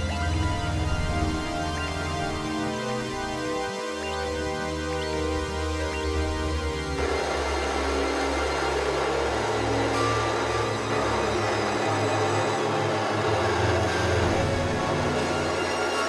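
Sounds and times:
low bass tones: 0:00.0 - 0:03.4
noisy synthesizer drone: 0:00.0 - 0:16.0.

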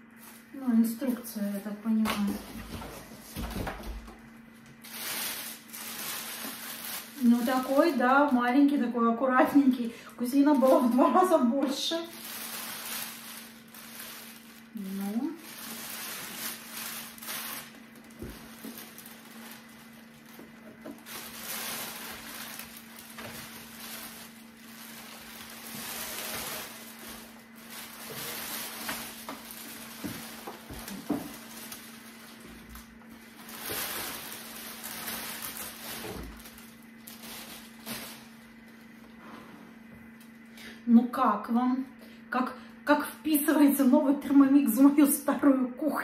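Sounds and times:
plastic bag rustling and crinkling: 0:00.0 - 0:39.1.

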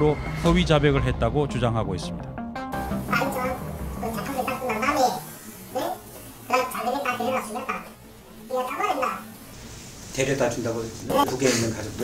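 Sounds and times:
man talking: 0:10.2 - 0:12.0.

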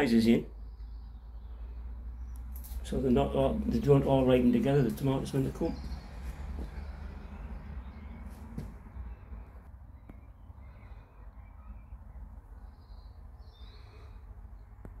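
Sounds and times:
faint distant bird calls: 0:00.0 - 0:15.0.

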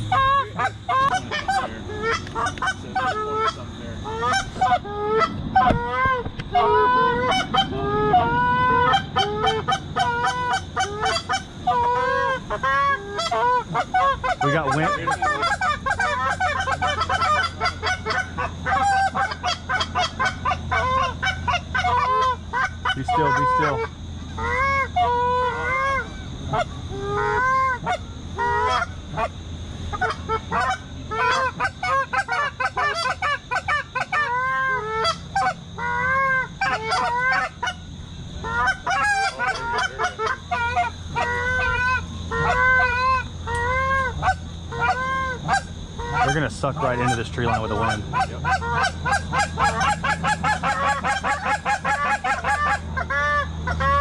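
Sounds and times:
geese honking: 0:00.0 - 0:54.0
low steady hum: 0:00.0 - 0:54.0.

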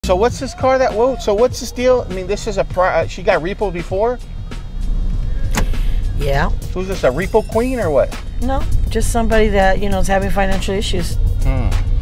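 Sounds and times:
car engine low rumble: 0:00.0 - 0:12.0.

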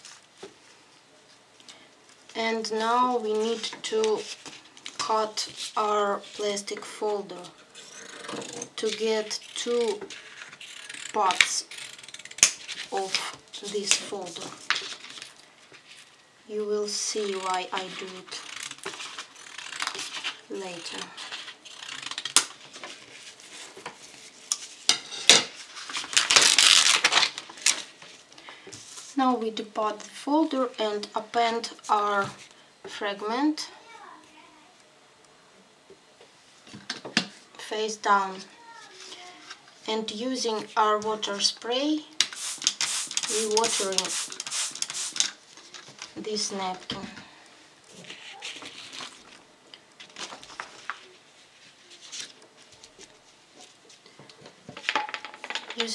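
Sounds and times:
spray bottle hissing squirts: 0:42.4 - 0:45.2.

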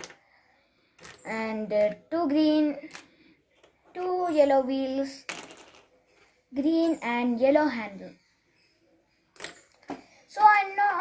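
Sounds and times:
plastic parts clicking on table: 0:00.0 - 0:00.2, 0:09.3 - 0:10.1.

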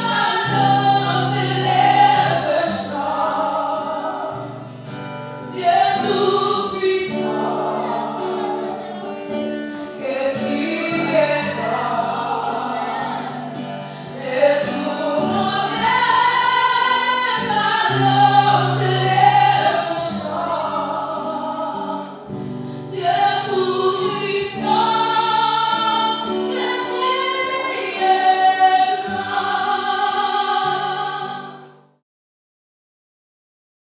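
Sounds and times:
choir singing a hymn: 0:00.0 - 0:31.7.

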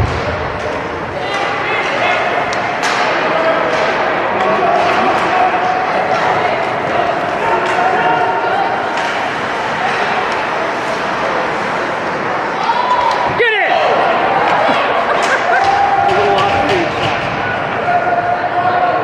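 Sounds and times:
hockey stick hitting puck: 0:00.0 - 0:08.0, 0:15.2 - 0:17.9
crowd voices and shouts: 0:00.0 - 0:19.0.

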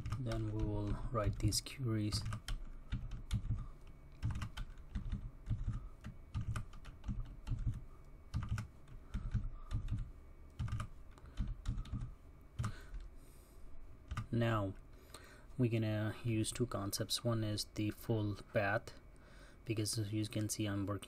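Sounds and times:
typing on computer keyboard: 0:00.0 - 0:01.5, 0:02.1 - 0:13.0, 0:14.1 - 0:14.3.

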